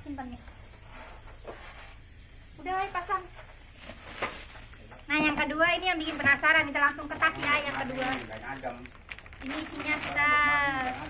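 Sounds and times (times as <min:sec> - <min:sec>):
plastic packaging rustling: 0:03.4 - 0:11.0.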